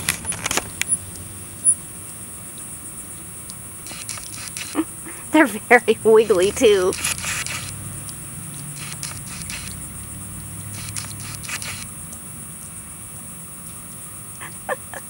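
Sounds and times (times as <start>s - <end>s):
steady high hiss: 0.0s - 15.0s
steady low hum: 0.0s - 15.0s.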